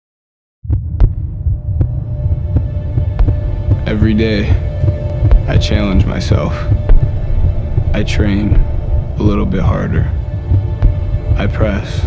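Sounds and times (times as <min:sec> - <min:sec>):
deep throbbing rumble: 0:00.6 - 0:12.0.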